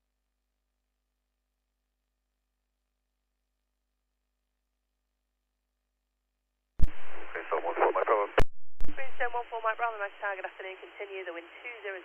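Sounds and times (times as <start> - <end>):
radio voice transmissions: 6.8 - 12.0.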